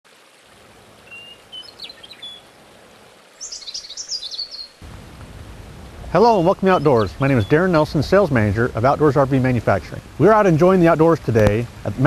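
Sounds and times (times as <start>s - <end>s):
faint hiss: 0.1s - 12.0s
birds singing: 1.0s - 2.6s, 3.3s - 4.8s, 6.1s - 8.1s.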